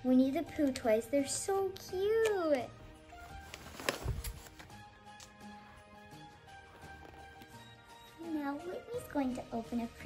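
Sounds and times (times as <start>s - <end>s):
quiet instrumental music: 0.0s - 10.0s
knock and rustle of wrapped present: 3.2s - 4.7s.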